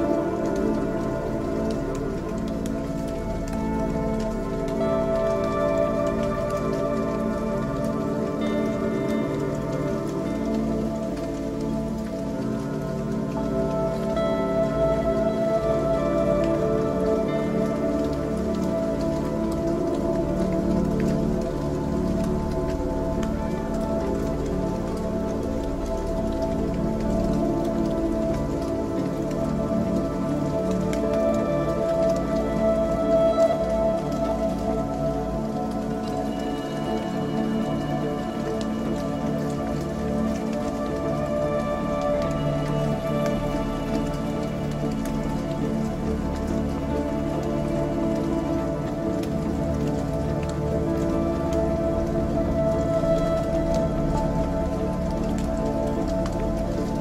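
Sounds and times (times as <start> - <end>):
ambient drone chords: 0.0 - 57.0
soft crackles: 0.0 - 57.0.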